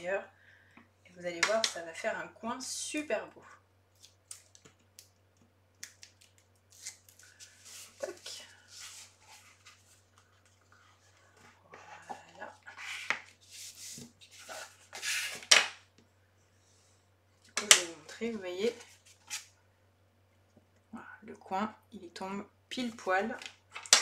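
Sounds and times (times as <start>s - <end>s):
paper rustling and scraping: 6.7s - 15.6s.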